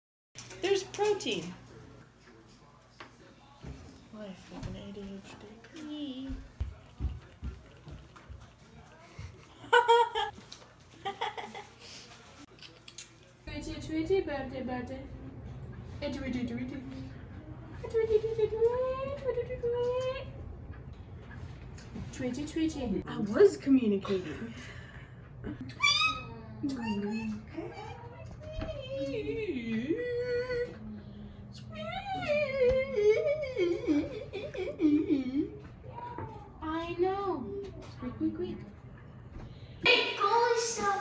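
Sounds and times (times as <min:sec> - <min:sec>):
girl's squeaky animal call: 0:25.7 - 0:27.4.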